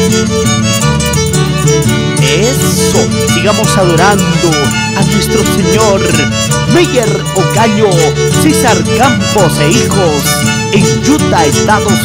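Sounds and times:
harp plucked bass line: 0.0s - 12.0s
violins playing lively melody: 0.0s - 12.0s.

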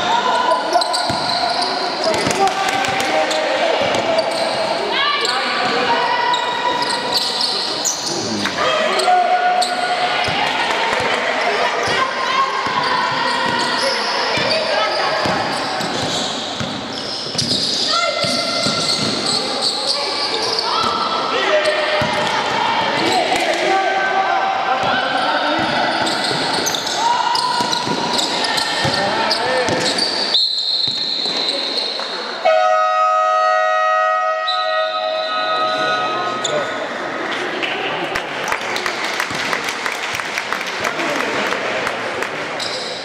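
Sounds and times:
high whistle: 30.2s - 36.6s
game horn: 32.4s - 36.4s.

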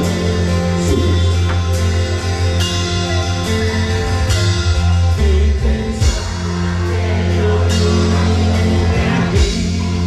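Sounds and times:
live band through pa: 0.0s - 10.0s.

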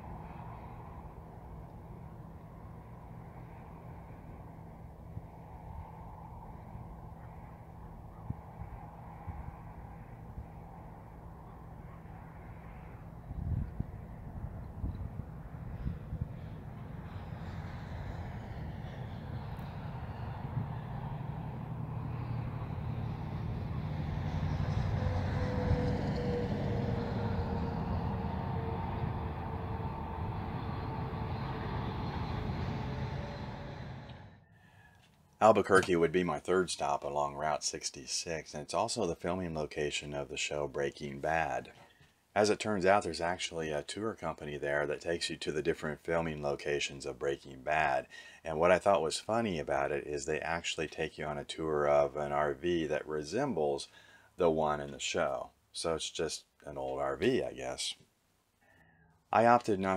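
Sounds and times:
vehicle passing by: 0.0s - 34.8s
low engine hum of traffic: 0.0s - 55.8s, 56.4s - 59.9s.

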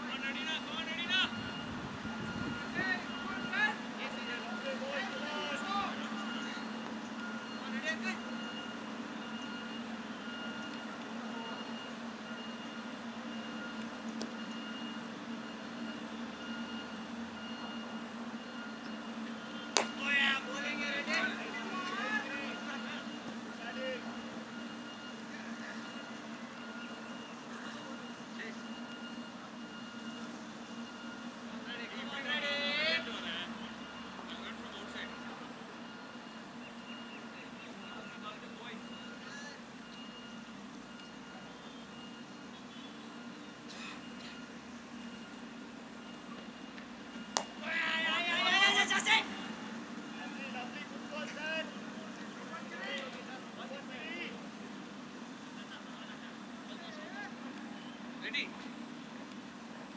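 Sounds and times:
players shouting: 2.8s - 6.4s, 47.5s - 51.8s.

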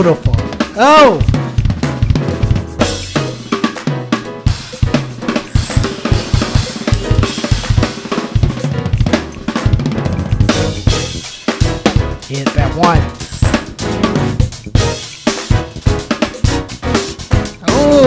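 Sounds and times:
drum kit playing groove: 0.0s - 18.0s.

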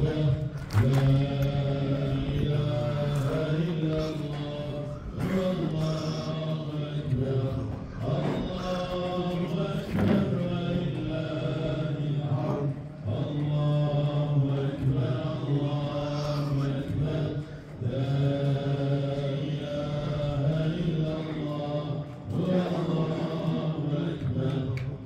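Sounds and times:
man chanting religious recitation: 0.0s - 25.0s.

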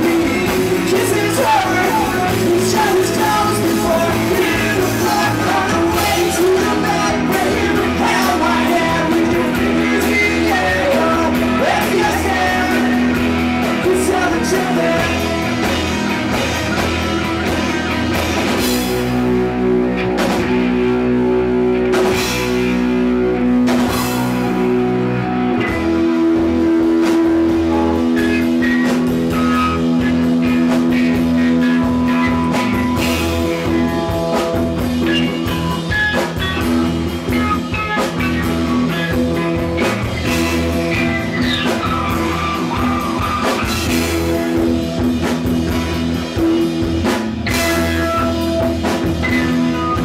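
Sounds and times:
bass and drums: 0.0s - 50.0s
electric guitar chords: 0.0s - 50.0s.

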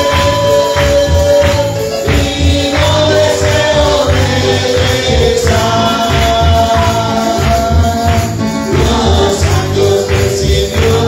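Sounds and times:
group of voices singing: 0.0s - 11.0s
steady bass beat: 0.0s - 11.0s
tambourine jingling: 0.0s - 11.0s.

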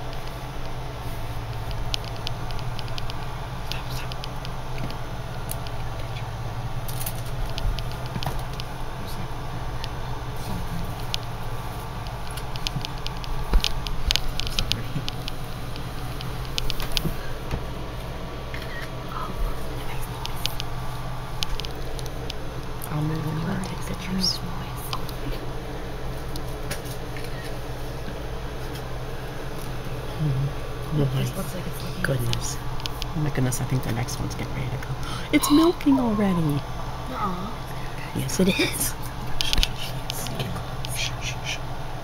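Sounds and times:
low room hum: 0.0s - 42.0s.

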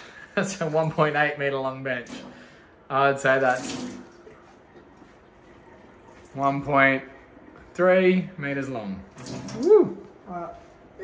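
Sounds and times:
water rushing from sink tap: 1.9s - 2.5s, 3.2s - 4.5s, 9.0s - 9.8s
person exclaiming: 9.6s - 10.4s.

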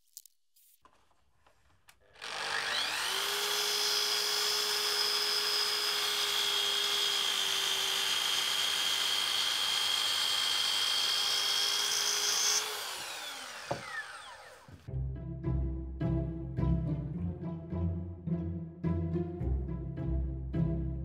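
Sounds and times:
electric saw motor running: 2.0s - 14.9s.

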